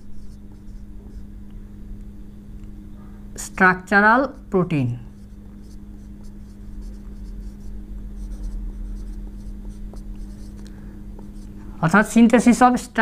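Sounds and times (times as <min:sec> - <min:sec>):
marker scratching on whiteboard: 0:00.0 - 0:01.2, 0:05.1 - 0:10.6, 0:11.2 - 0:11.5
steady low hum: 0:00.0 - 0:13.0.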